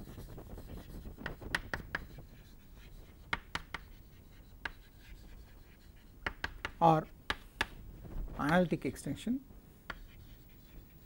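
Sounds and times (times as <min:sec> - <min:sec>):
chalk scratching on chalkboard: 0:00.0 - 0:07.8, 0:09.9 - 0:11.0
chalk tapping on chalkboard: 0:00.0 - 0:07.8, 0:09.9 - 0:11.0.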